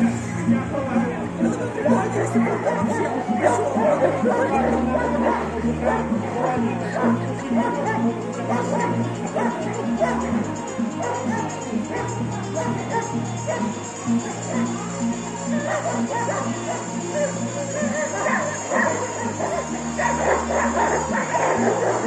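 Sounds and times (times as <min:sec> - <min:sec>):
crowd voices: 0:00.0 - 0:22.0
loudspeaker music with bass line: 0:00.0 - 0:22.0
dog barking: 0:02.1 - 0:22.0.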